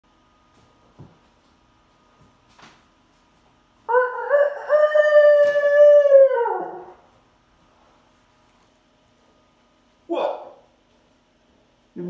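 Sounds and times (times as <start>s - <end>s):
rooster crowing: 3.9s - 7.1s.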